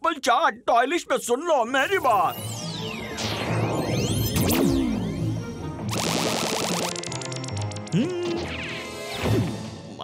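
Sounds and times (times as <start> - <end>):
background music: 1.8 - 10.0
cartoon sound effects: 7.8 - 8.8.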